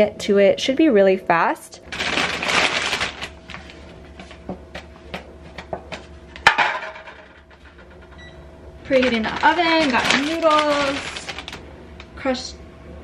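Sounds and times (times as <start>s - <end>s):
plastic bag rustling: 1.9s - 4.4s, 8.8s - 11.7s
packages knocking on countertop: 4.4s - 7.5s.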